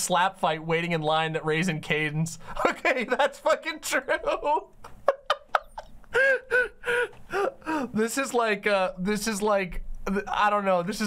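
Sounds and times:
woman laughing: 4.1s - 7.5s
sharp gasping breaths: 6.1s - 8.0s.

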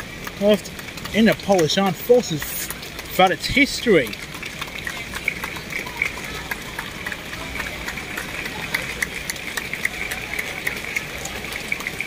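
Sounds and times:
raindrops hitting umbrellas: 0.0s - 12.0s
steady rain falling: 0.0s - 12.0s.

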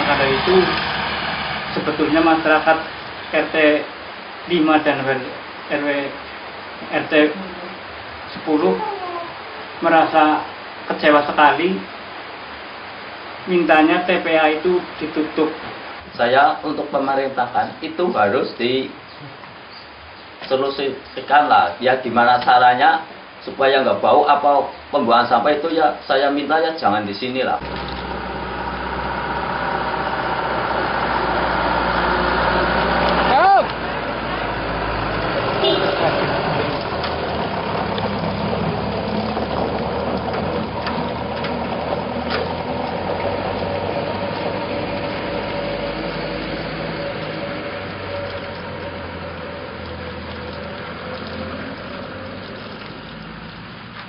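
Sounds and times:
engine hum: 0.0s - 13.5s, 27.5s - 54.0s
voices: 6.8s - 11.9s, 33.0s - 39.8s.

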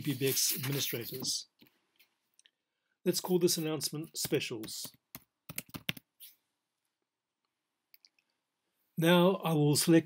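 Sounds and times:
keyboard typing: 4.2s - 6.2s.

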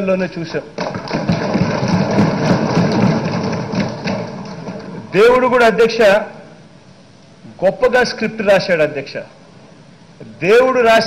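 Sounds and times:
people thumping desks: 0.8s - 5.1s.

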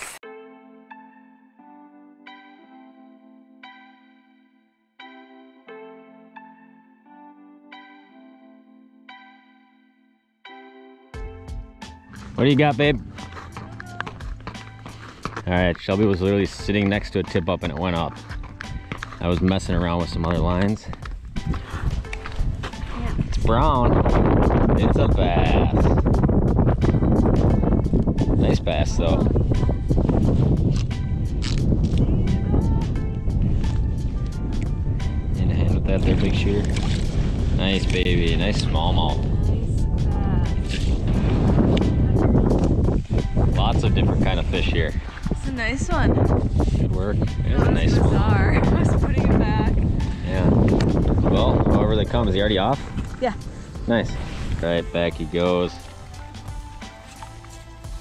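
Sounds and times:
background music with held tones: 0.1s - 58.0s
running footsteps on ice: 12.1s - 23.0s
wind buffeting microphone: 12.2s - 56.6s.

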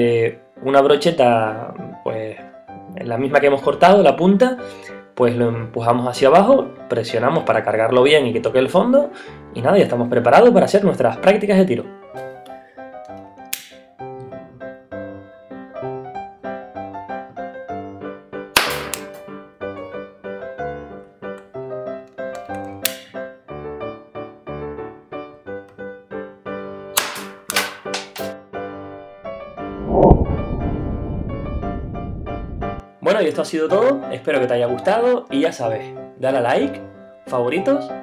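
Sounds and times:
background music: 0.0s - 38.0s
sharp cracks of match charges: 13.5s - 13.8s, 18.6s - 19.3s, 22.4s - 23.2s, 27.0s - 28.4s
loud rushing burst: 29.8s - 32.8s.

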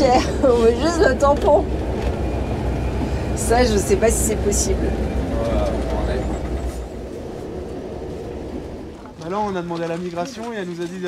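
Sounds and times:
truck engine rumble from inside cab: 0.0s - 9.4s.

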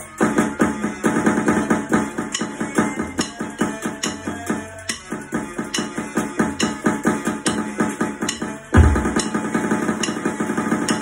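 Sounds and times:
electronic dance music: 0.0s - 11.0s
electronic drum kit hits: 0.2s - 4.3s, 5.1s - 11.0s.

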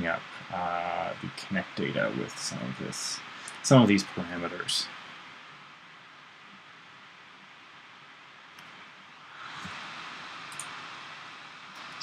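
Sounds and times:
computer cooling fans hissing: 0.0s - 12.0s
faint clicks: 8.5s - 8.8s, 10.5s - 10.8s.

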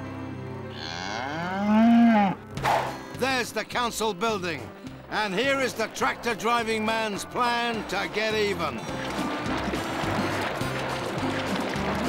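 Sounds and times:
cow mooing: 0.7s - 2.6s.

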